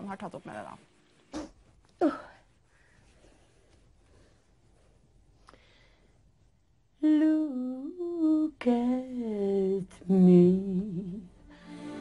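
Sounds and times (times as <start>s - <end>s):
woman singing unaccompanied: 7.0s - 12.0s.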